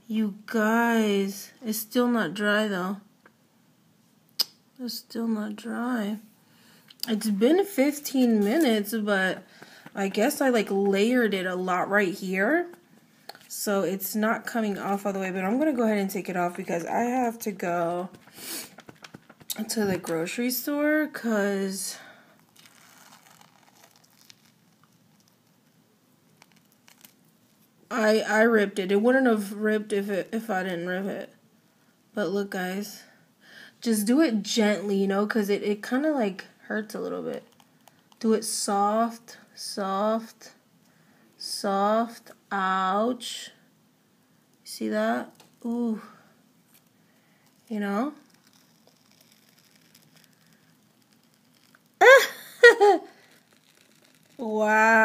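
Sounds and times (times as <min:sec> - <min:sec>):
peel-off mask crackling and tearing: 0:22.4 - 0:27.8, 0:46.7 - 0:55.0.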